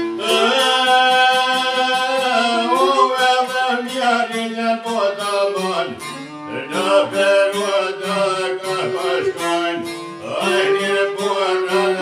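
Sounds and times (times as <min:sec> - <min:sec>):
man singing folk ballad: 0:00.0 - 0:12.0
plucked lute: 0:00.0 - 0:12.0
violin: 0:00.0 - 0:12.0.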